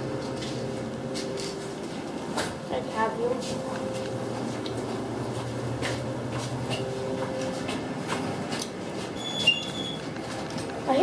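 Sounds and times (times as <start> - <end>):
elevator machine hum: 0.0 - 11.0.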